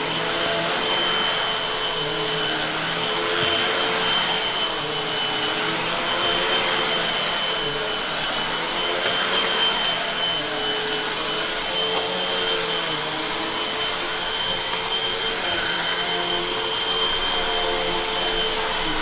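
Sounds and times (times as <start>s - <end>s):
vacuum cleaner running on carpet: 0.0s - 19.0s.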